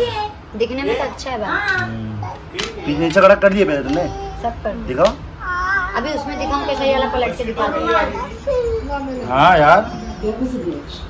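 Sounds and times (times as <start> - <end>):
high-pitched wordless cries: 5.4 - 11.0.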